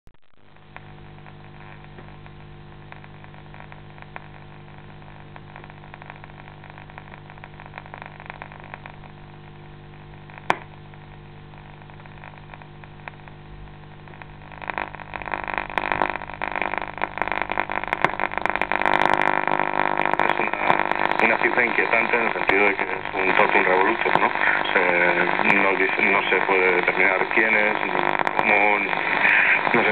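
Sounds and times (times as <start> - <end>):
radio hum with faint static: 0.1 - 29.9
loud crackling radio static: 0.2 - 29.9.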